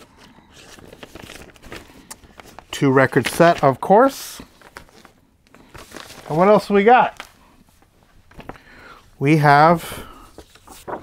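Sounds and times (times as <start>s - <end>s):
record sleeve rustling: 0.0s - 3.7s, 4.4s - 8.7s, 10.3s - 11.0s.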